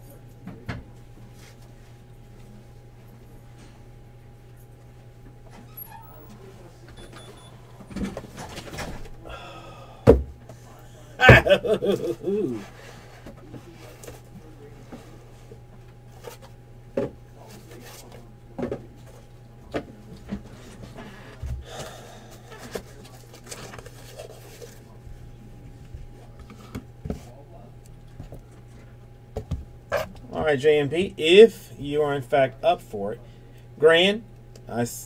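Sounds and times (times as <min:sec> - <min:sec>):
steady electrical hum: 0:00.0 - 0:35.0.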